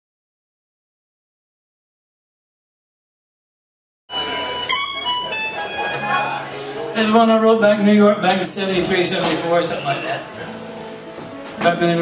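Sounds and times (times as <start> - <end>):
harmonica chords: 4.1 - 11.7.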